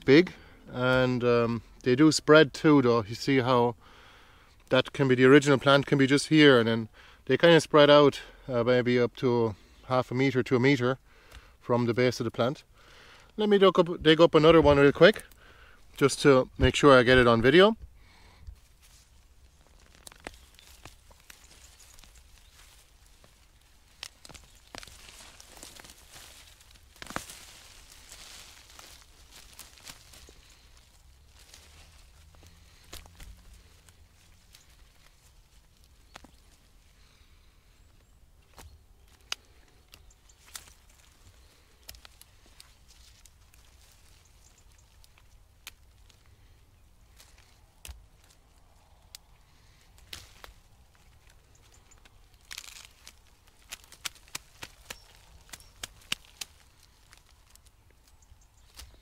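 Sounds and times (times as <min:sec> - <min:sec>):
plant rustling: 0:13.3 - 0:59.0
garden fork clicks and crunches: 0:51.6 - 0:59.0.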